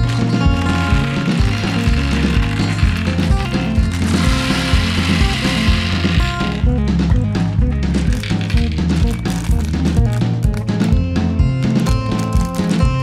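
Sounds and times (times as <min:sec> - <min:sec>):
plastic toy capsule rattling: 0:00.0 - 0:06.7, 0:08.0 - 0:11.0, 0:11.6 - 0:13.0
background music with steady beat: 0:00.0 - 0:13.0
gumballs knocking together: 0:00.0 - 0:13.0.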